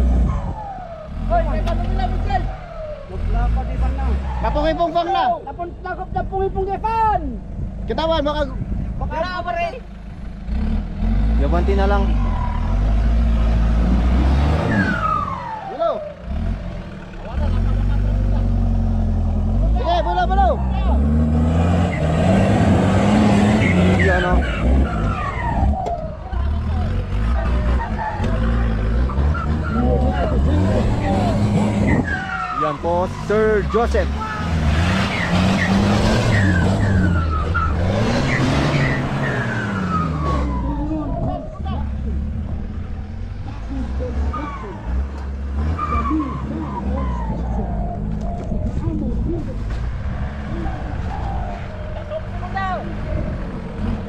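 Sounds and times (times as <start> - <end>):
off-road engine revving hard: 0.0 - 5.2, 10.2 - 54.0.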